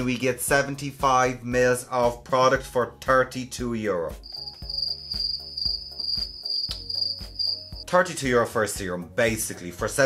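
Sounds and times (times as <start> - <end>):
background music with beat: 0.0 - 10.0
cricket chirping: 4.2 - 7.8.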